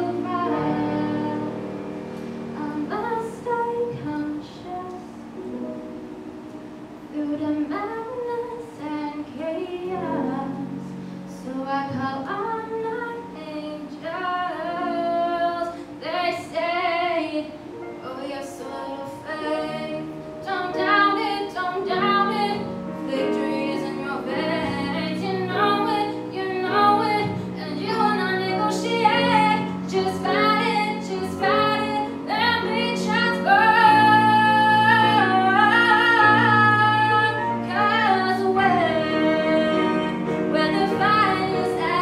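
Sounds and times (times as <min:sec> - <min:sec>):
girl singing into microphone: 0:00.0 - 0:01.7, 0:02.6 - 0:05.2, 0:07.1 - 0:42.0.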